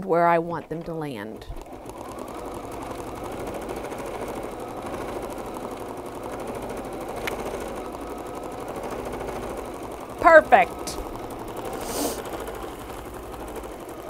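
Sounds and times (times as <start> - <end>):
embroidery machine stitching: 0.0 - 14.0.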